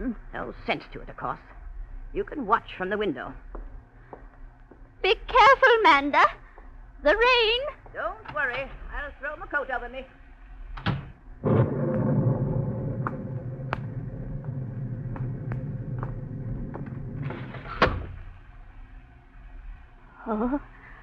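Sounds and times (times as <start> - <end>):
door banging shut: 17.2 - 18.2.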